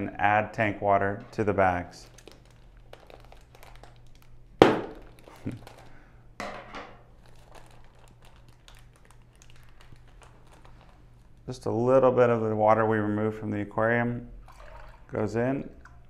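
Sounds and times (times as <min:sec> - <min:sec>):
plastic bag crinkling: 0:01.2 - 0:06.1, 0:07.0 - 0:11.7.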